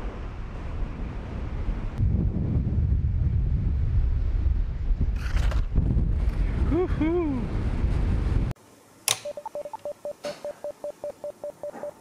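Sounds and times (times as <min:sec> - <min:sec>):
wind noise on microphone: 0:00.0 - 0:08.6
sharp clicks: 0:09.0 - 0:10.4
short electronic beeps: 0:09.2 - 0:12.0.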